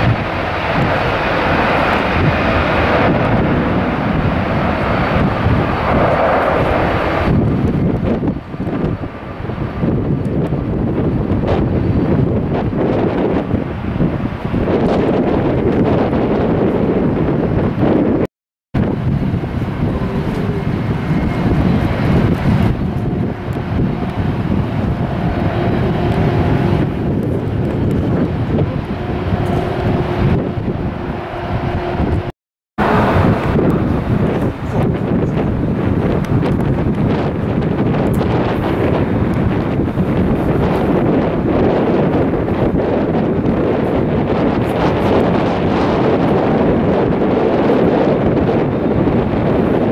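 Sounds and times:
jet engines whining: 0.0s - 49.9s
wind buffeting microphone: 0.0s - 49.9s.

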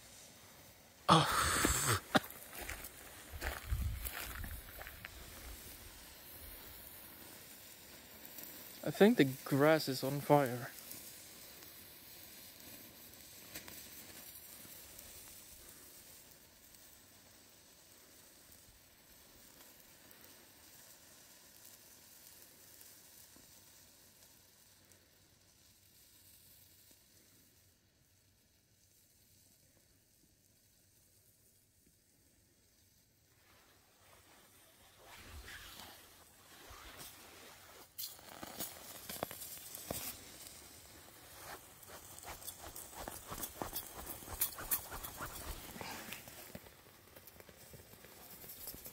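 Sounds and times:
burning mixture sizzling hiss: 0.0s - 48.9s
sharp clicks and crackles: 35.1s - 48.9s.

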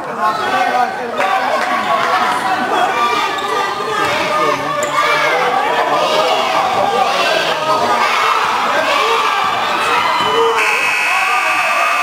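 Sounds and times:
crowd voices in a hall: 0.0s - 12.0s
scoreboard buzzer: 10.6s - 12.0s.

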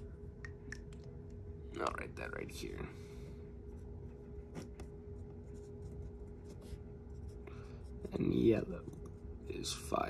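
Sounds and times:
low electrical hum: 0.0s - 10.0s
marker scratching on whiteboard: 4.5s - 9.2s.

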